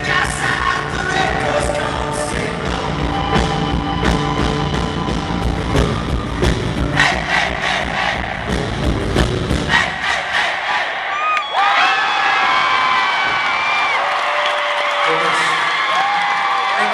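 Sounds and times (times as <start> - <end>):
audience cheering and screaming: 0.0 - 8.9, 9.7 - 16.9
rock band playing live: 0.0 - 10.0.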